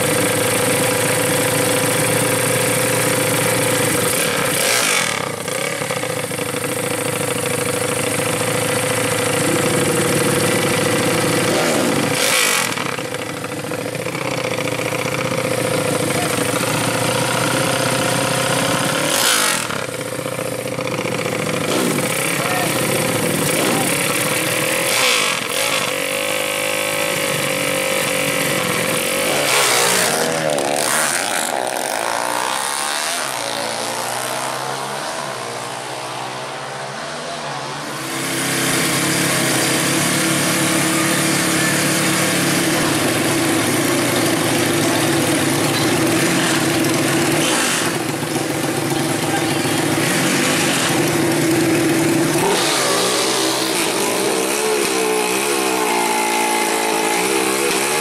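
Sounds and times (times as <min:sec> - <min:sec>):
motorcycle engine idling and revving: 0:00.0 - 0:58.0.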